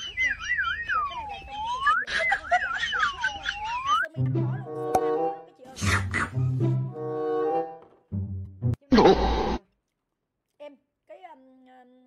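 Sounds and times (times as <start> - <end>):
whistled comedy tune: 0.0 - 6.6.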